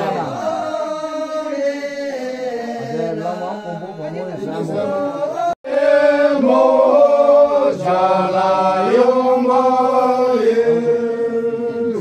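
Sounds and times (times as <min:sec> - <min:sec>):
man chanting: 0:00.0 - 0:05.6.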